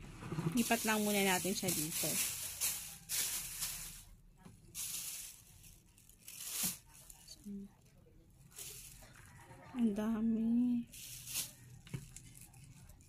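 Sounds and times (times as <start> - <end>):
plastic bag crinkling: 0.6 - 9.6, 10.8 - 13.0.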